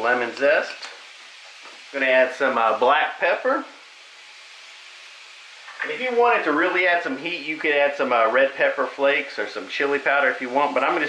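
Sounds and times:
squash sizzling in a skillet: 0.0 - 11.0.

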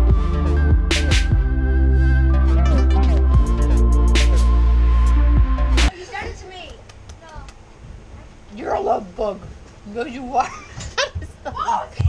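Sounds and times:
high-pitched gliding vocal sounds: 2.5 - 3.4.

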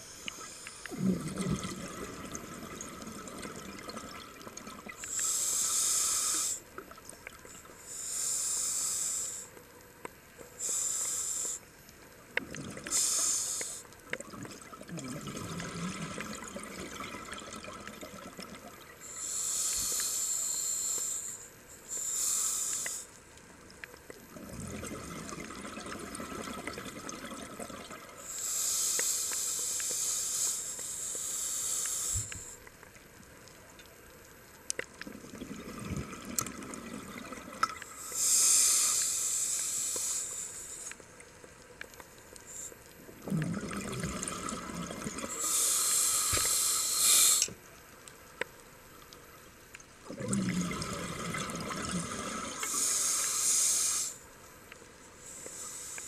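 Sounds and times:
bubbling exhalations: 0.8 - 5.2, 14.2 - 18.8, 24.3 - 28.1, 35.0 - 37.8, 43.2 - 45.6, 50.1 - 52.9
hissing regulator breaths: 5.0 - 6.7, 7.8 - 9.6, 10.6 - 11.7, 12.9 - 14.0, 19.0 - 23.2, 28.2 - 32.8, 37.8 - 41.0, 45.3 - 47.6, 52.6 - 54.3, 55.2 - 56.0.

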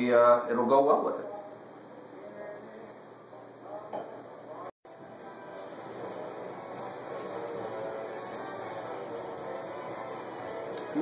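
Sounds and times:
background music: 4.9 - 11.0.

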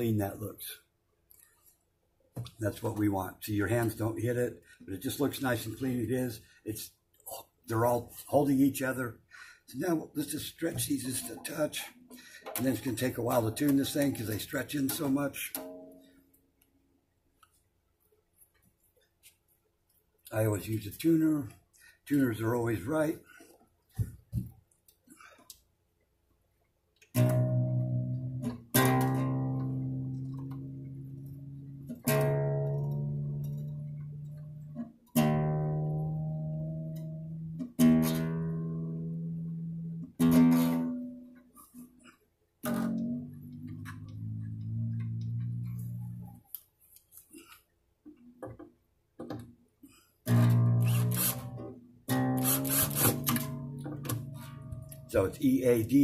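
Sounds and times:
guitar strumming: 10.7 - 16.2, 27.1 - 41.9, 42.6 - 46.4, 50.2 - 56.0
guitar strings plucked and ringing: 12.5 - 16.3, 27.1 - 41.5, 42.6 - 46.4, 50.3 - 56.0.

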